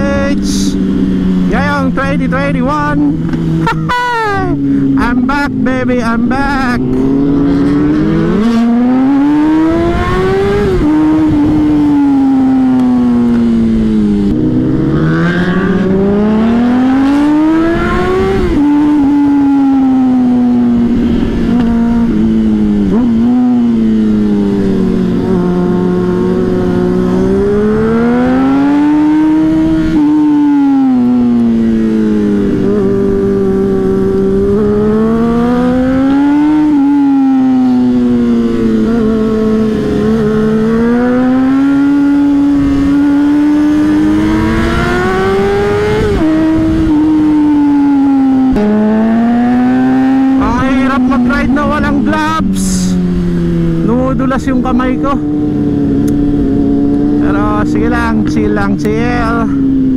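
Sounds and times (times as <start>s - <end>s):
low rush of wind: 0.0s - 59.9s
motorcycle engine accelerating: 0.0s - 59.9s.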